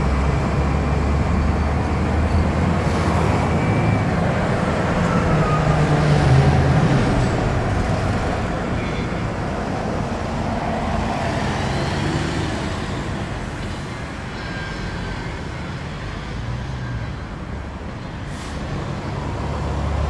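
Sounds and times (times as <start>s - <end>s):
car engine and tyre noise: 0.0s - 20.0s.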